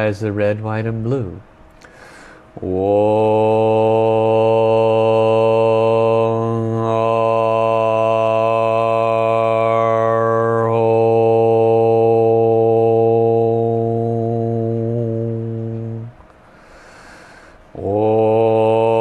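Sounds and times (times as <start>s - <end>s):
man chanting long low note: 2.6s - 16.2s, 17.8s - 19.0s.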